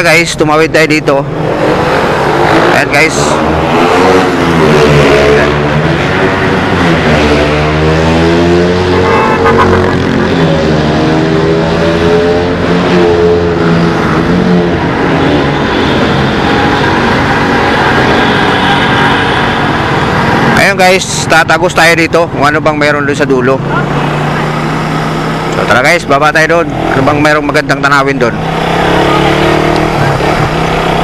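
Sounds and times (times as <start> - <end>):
motorcycle engine revving: 1.2 - 20.9, 23.0 - 31.0.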